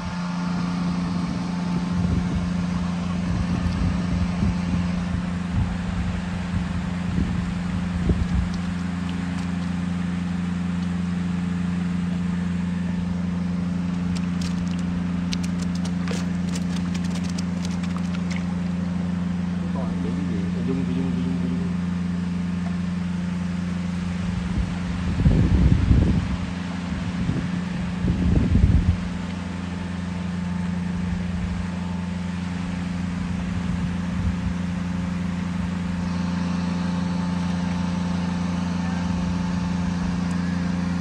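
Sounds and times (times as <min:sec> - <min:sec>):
machine droning: 0:00.0 - 0:26.8, 0:27.6 - 0:41.0.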